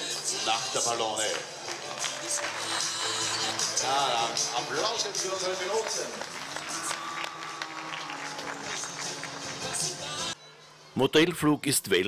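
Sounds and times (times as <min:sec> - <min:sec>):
crowd applauding: 0:01.3 - 0:10.4.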